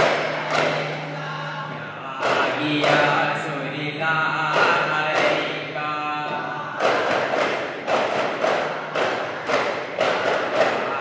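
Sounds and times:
frame drums beaten in rhythm: 0.0s - 11.0s.

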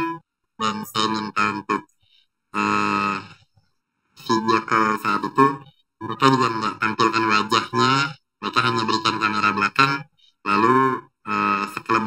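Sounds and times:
man's drawn-out hesitation sound: 0.0s - 3.4s, 4.2s - 12.0s.

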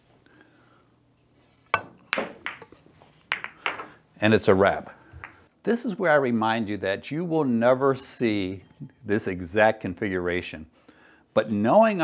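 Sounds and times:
cue tip striking ball: 1.8s - 2.7s
pool balls clicking: 1.8s - 4.0s.

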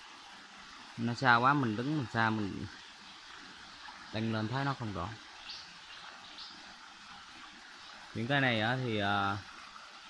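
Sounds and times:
stream water rushing: 0.0s - 10.0s.

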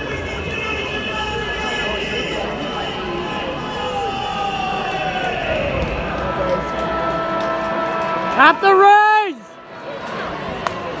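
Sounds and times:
stadium crowd murmur: 0.0s - 11.0s
spectator shouting: 8.1s - 9.5s.

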